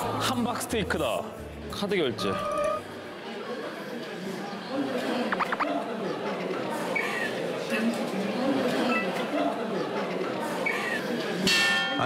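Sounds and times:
murmur of indoor chatter: 0.0s - 12.0s.

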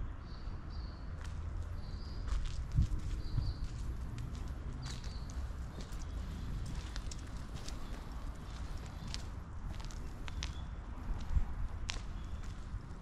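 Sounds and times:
footsteps on paving: 1.1s - 13.0s
steady low rumble: 1.2s - 13.0s.

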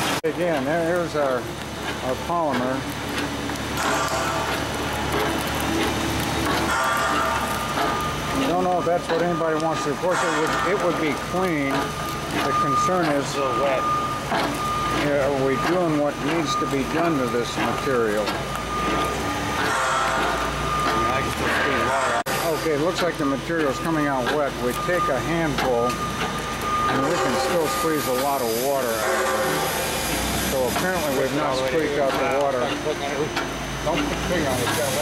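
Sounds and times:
people talking: 0.2s - 2.9s, 8.3s - 14.0s, 15.0s - 18.4s, 20.9s - 26.0s, 26.9s - 29.6s, 30.5s - 35.0s
faint steady whining tones: 2.1s - 35.0s.

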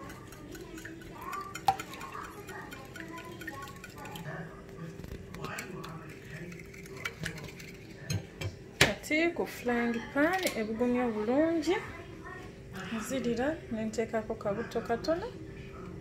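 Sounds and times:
wire whisk clinking in bowl: 0.0s - 4.4s.

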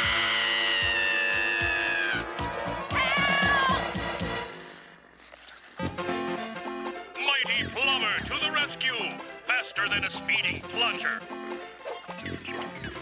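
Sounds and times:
cartoon woman screaming: 0.0s - 2.3s, 2.9s - 4.0s
wavering cry: 0.0s - 4.0s
music: 0.0s - 13.0s.

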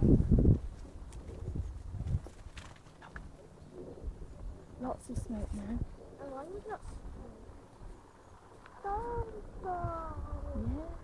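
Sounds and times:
faint outdoor rumble: 0.0s - 11.0s.

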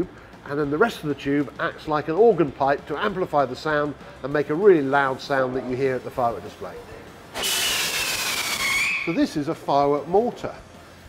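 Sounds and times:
rushing hiss: 7.4s - 8.9s
shrill firework whistle: 7.4s - 9.2s.

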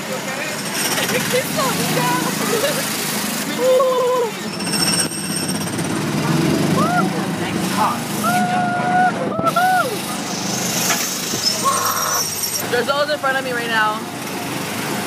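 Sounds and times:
voices calling out: 0.0s - 4.8s, 6.4s - 10.6s, 11.3s - 13.8s
small gasoline engine rumbling: 0.0s - 15.0s.

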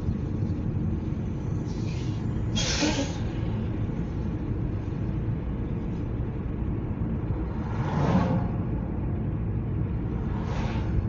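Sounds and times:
car road and engine rumble: 0.0s - 11.0s
vehicle passing whoosh: 7.3s - 8.9s, 10.1s - 11.0s.

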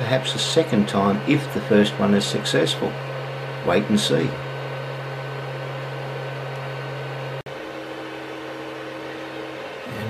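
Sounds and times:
cooling fans humming: 0.0s - 10.0s.

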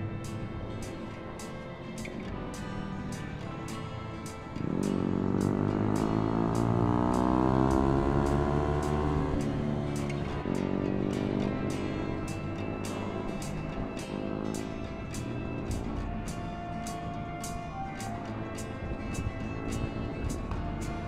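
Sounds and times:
background music with steady beat: 0.0s - 21.0s
motorcycle engine accelerating: 4.5s - 16.2s.

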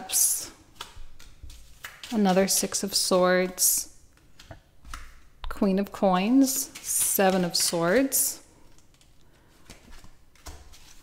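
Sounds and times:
cards rustling and clicking: 0.5s - 5.3s, 6.2s - 11.0s.

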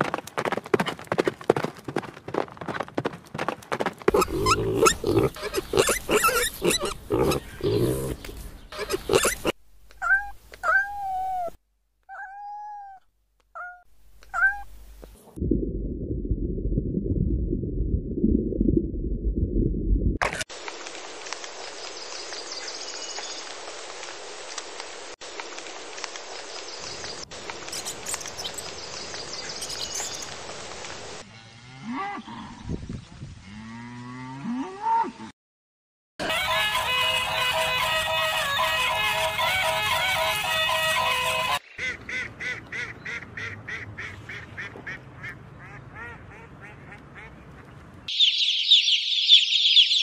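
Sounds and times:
cows mooing: 4.1s - 8.3s
cat meowing: 10.0s - 13.0s, 13.6s - 14.7s
loud low rumbling: 15.4s - 20.2s
rain-like hiss: 20.5s - 31.2s.

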